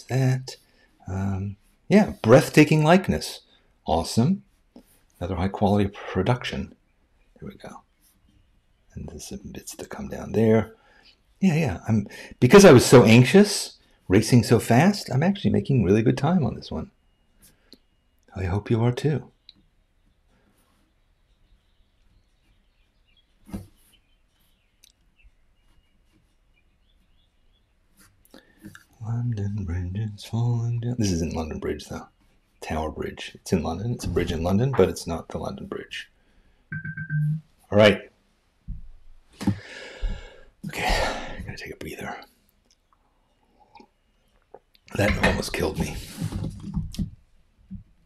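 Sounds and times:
man's close breathing: 12.1 - 12.4, 39.4 - 41.5.

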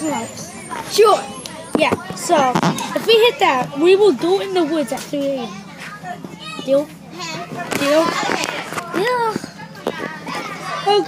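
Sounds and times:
boy speaking: 0.0 - 11.0
boys' voices: 0.0 - 11.0.

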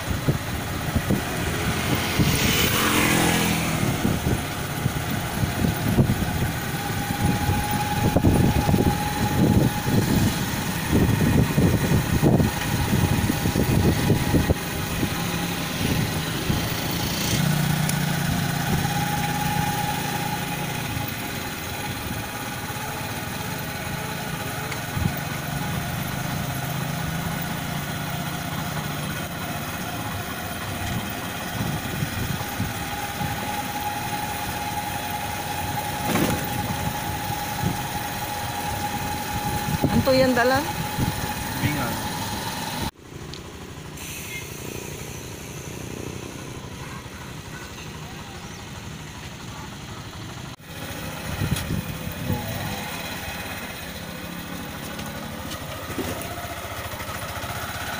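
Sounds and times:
wind rumble on microphone: 0.0 - 2.7, 3.5 - 16.8, 39.4 - 41.3, 51.3 - 52.7
small vehicle engine running: 0.0 - 57.9.

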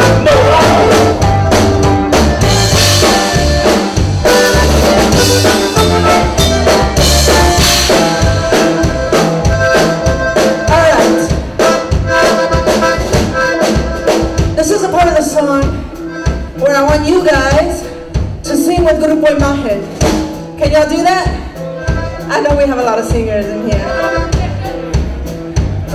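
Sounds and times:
accordion melody: 0.0 - 25.9
congas: 0.0 - 25.9
drum kit: 0.0 - 25.9
electric bass: 0.0 - 25.9.

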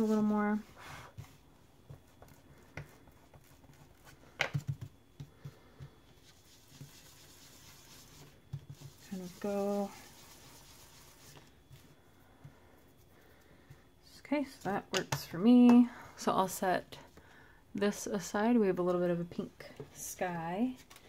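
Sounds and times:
sponge tool dabbing on card: 0.2 - 11.8.

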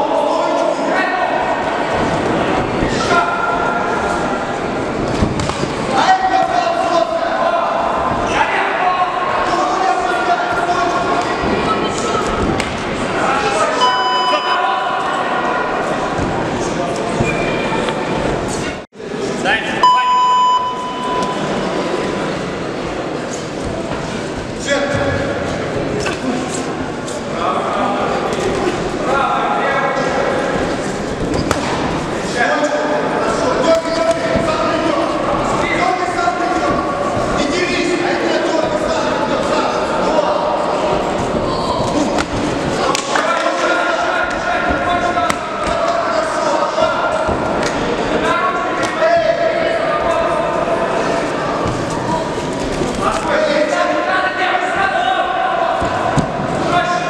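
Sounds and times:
ringing signal tone: 19.8 - 21.4.

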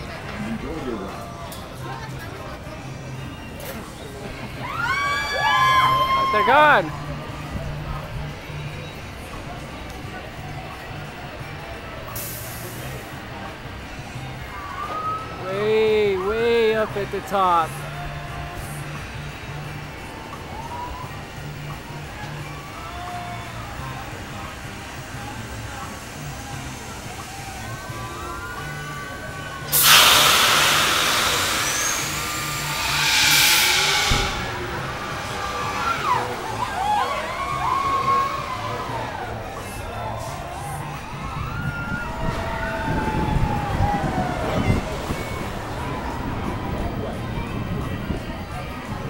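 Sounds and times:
faint park background noise: 0.0 - 29.8
crowd voices: 0.0 - 49.0
music: 0.0 - 49.0
rush of compressed air: 29.7 - 36.9
steady low rumble: 30.2 - 39.9.

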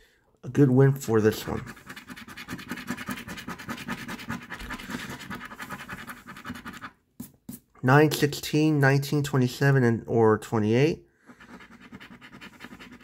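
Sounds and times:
coin scratching lottery ticket: 1.3 - 6.9, 11.4 - 13.0.

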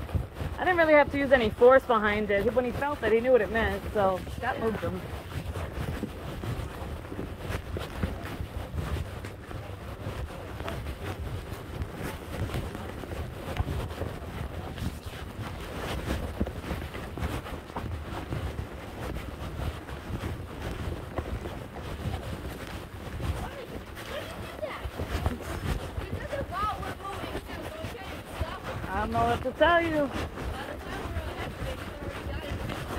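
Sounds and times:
rustles: 0.0 - 32.9
wind buffeting microphone: 0.0 - 32.9.

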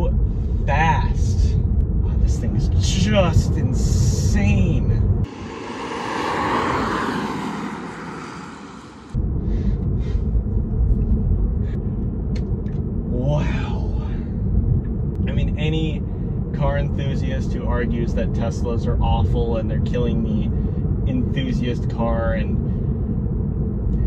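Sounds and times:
low road rumble inside car: 0.0 - 24.0
electric car driving past: 5.3 - 9.2.

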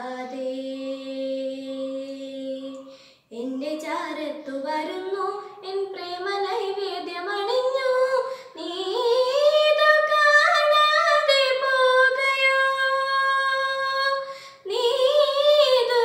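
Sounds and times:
girl singing unaccompanied: 0.0 - 16.0.

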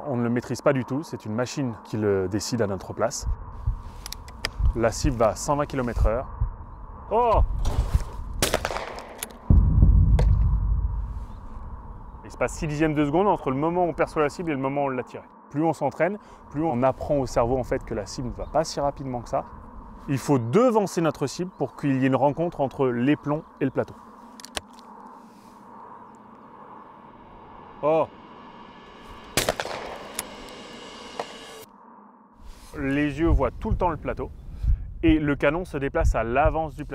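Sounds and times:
faint outdoor air: 0.0 - 36.9
muffled shotgun boom: 7.4 - 11.4, 29.3 - 30.3
faint sharp cracks: 8.4 - 9.5.

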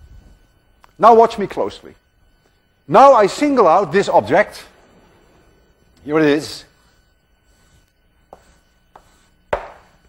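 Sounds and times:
chalk tapping on blackboard: 6.8 - 10.0.

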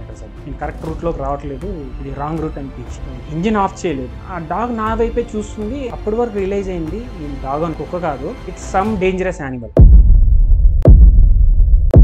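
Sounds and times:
deep booming bass hits: 9.8 - 12.0
low rumble: 9.8 - 12.0.

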